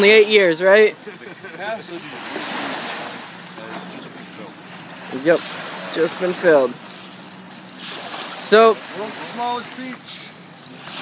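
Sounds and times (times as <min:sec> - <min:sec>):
small waves washing on sand: 0:01.4 - 0:11.0.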